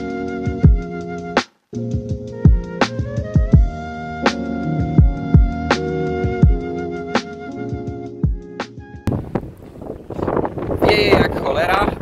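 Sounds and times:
wind buffeting microphone: 9.0 - 12.0.

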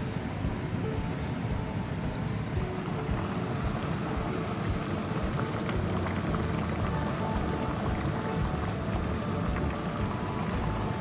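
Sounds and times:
curry bubbling and popping: 2.6 - 11.0.

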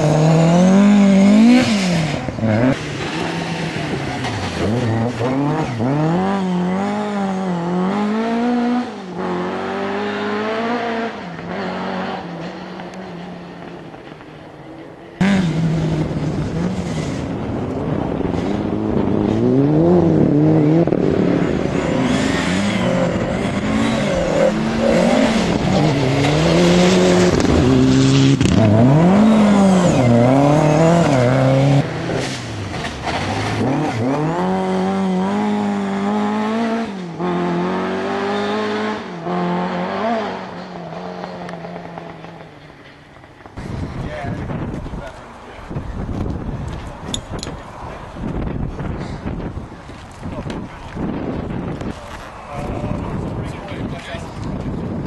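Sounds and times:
rally car engines revving: 0.0 - 55.0.

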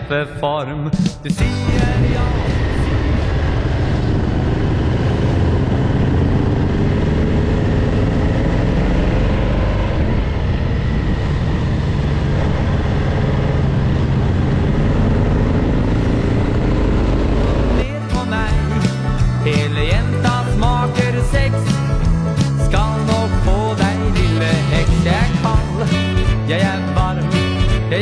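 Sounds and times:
wind rushing over microphone: 1.4 - 17.8
motorcycle engine running: 1.4 - 28.0.

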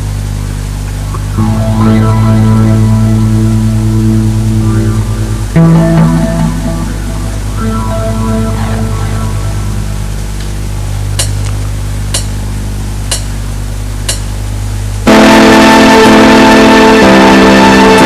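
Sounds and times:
steady low hum: 0.0 - 18.0
live band playing chords: 1.3 - 10.3
sharp ticks: 11.2 - 11.4, 12.1 - 12.3, 13.1 - 13.3, 14.1 - 14.3.

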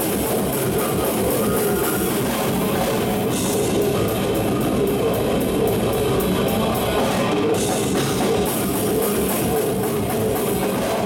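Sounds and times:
distorted electric guitar: 0.0 - 11.0
drums: 0.0 - 11.0.

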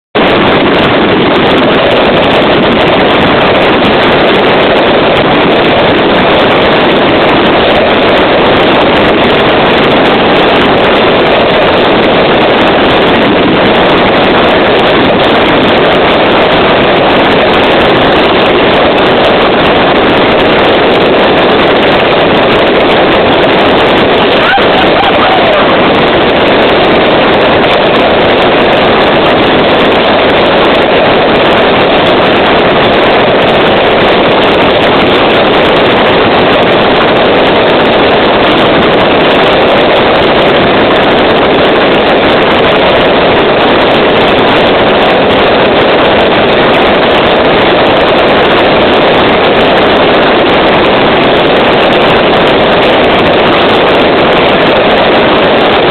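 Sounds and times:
fireworks bursting and crackling: 0.2 - 55.9.

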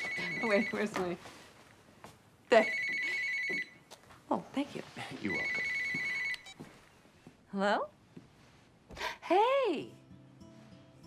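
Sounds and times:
cordless phone ringing: 0.0 - 0.9, 2.5 - 3.8, 5.3 - 6.6.

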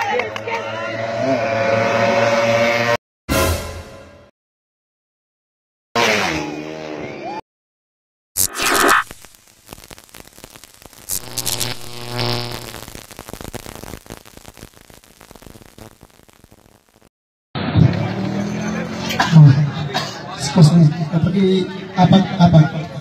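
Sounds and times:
motorcycle engine revving: 0.9 - 3.0, 6.0 - 7.3
sharp hit sound effect: 8.4 - 9.2
noisy sound effects: 8.4 - 18.8
crowd noise: 17.6 - 23.0.

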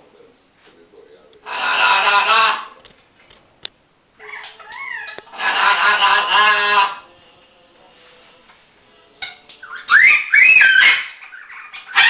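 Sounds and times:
parrot calling: 1.4 - 2.8, 4.2 - 7.1, 9.2 - 12.0.

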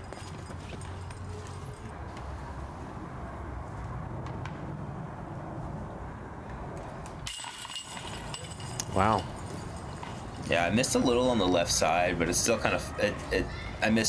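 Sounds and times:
disc hitting metal chains: 7.3 - 10.5.

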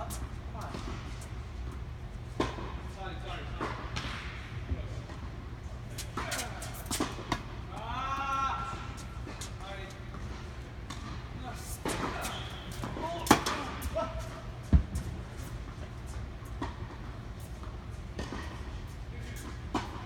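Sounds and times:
racket striking tennis ball: 6.0 - 7.6
ball bouncing on hard court: 14.7 - 15.1.

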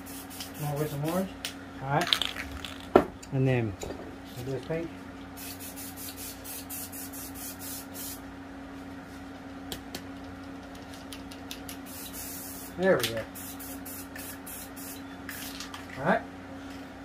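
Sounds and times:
spray-paint can hissing: 0.0 - 1.0, 5.4 - 8.2, 11.8 - 15.6
steady low hum: 0.0 - 17.0.

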